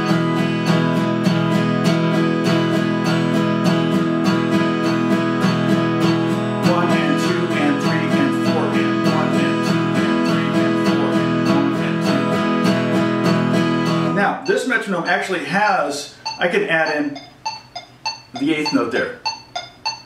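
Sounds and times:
acoustic guitar strumming: 0.0s - 20.0s
metronome ticking: 0.0s - 20.0s.

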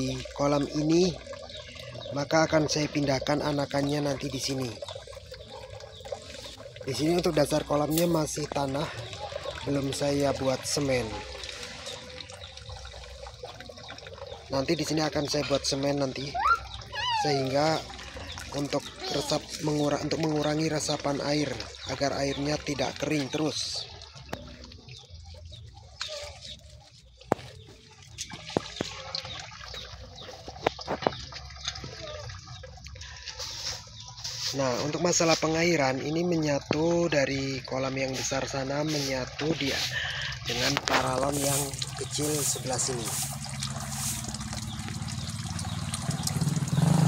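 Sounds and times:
water dripping: 0.0s - 47.0s.

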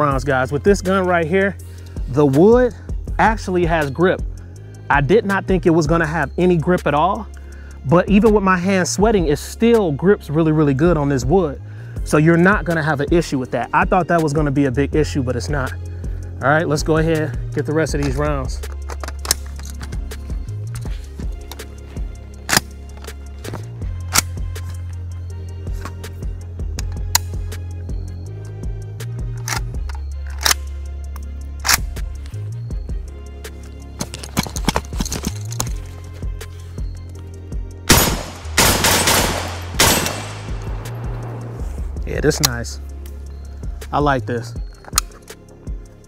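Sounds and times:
background music with bass line: 0.0s - 46.0s
rifle shots: 37.9s - 41.5s.

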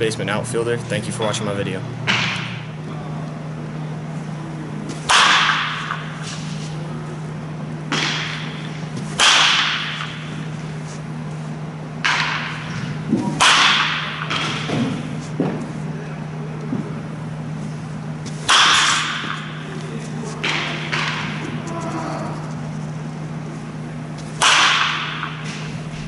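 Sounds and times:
steady low hum: 0.0s - 26.0s
baseball bat cracking ball: 2.1s - 2.7s, 5.0s - 6.5s, 7.9s - 10.5s, 12.0s - 15.6s, 18.3s - 21.8s, 24.2s - 26.0s.

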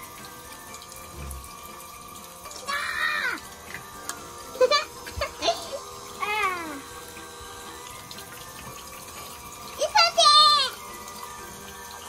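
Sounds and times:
water pump hum: 0.0s - 12.0s
water running: 0.0s - 12.0s.

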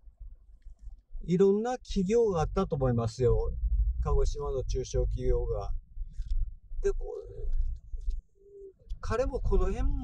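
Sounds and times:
low rumble of car driving: 1.2s - 10.0s.

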